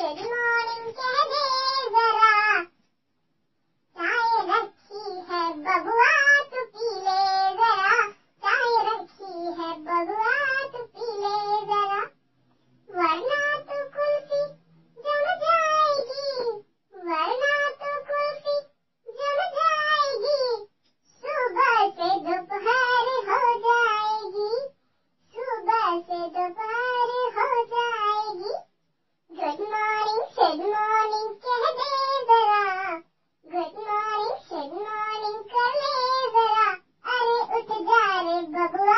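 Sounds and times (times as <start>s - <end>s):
child singing: 0.0s - 2.7s, 4.0s - 12.2s, 12.9s - 28.7s, 29.3s - 38.9s.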